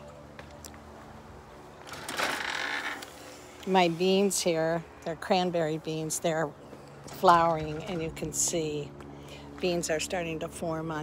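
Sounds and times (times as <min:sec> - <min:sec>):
screen door rattling scrape: 0:01.9 - 0:03.1.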